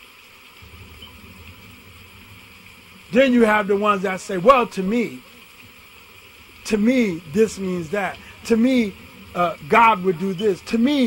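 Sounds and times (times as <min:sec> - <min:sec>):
faint hiss: 0:00.0 - 0:11.0
low hum: 0:00.5 - 0:11.0.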